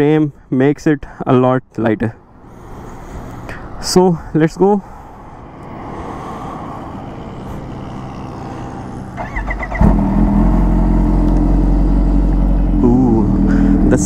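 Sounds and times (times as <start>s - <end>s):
motorcycle engine idling loudly: 8.2s - 12.8s
motorcycle engine cranking: 9.2s - 10.1s.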